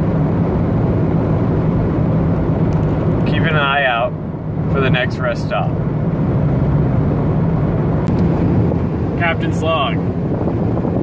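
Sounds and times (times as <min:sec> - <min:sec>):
car engine drone: 0:00.0 - 0:11.0
road noise: 0:00.0 - 0:11.0.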